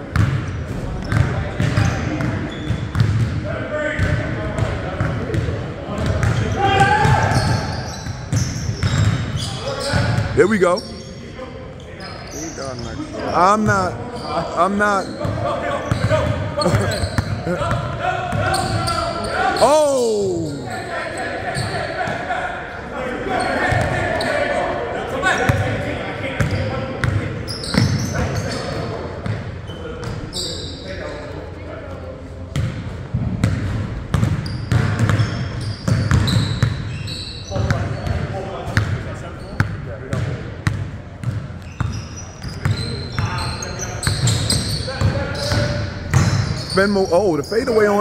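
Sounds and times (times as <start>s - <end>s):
players' voices: 0.7s - 33.3s, 37.0s - 48.0s
basketballs bouncing on hardwood: 35.9s - 36.7s.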